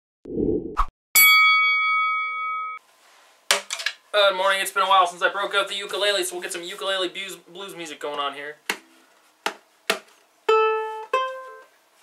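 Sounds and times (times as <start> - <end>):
bell-like metallic clang: 1.2 - 2.8.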